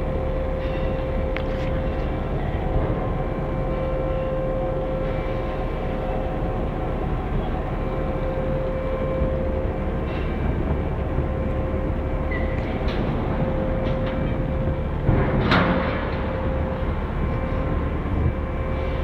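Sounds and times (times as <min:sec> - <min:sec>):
crane machinery rumbling and whining: 0:00.0 - 0:19.0.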